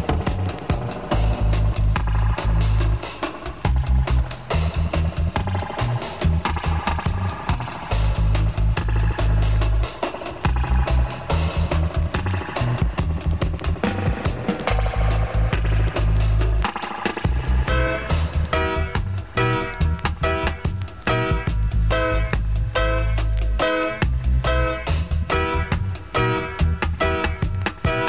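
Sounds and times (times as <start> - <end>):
reggae dub instrumental on radio: 0.0 - 28.0.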